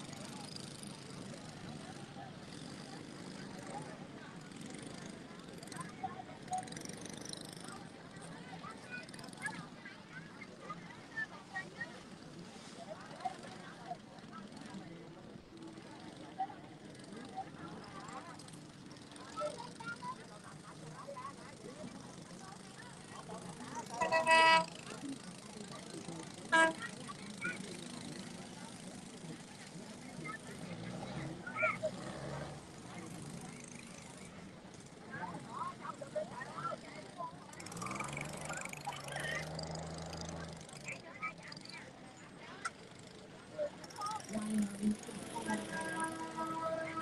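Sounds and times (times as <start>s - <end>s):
small boat engine drone: 0.0s - 47.0s
boat horn toots: 23.8s - 25.0s, 26.4s - 27.0s, 45.1s - 47.0s.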